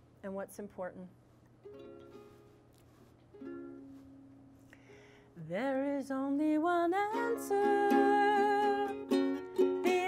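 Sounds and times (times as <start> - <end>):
ukulele chords strummed: 1.6 - 2.6, 3.3 - 4.4, 5.6 - 10.0.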